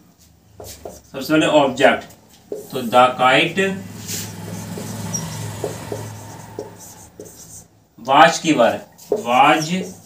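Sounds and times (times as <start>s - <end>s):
marker writing on whiteboard: 0.5s - 10.0s.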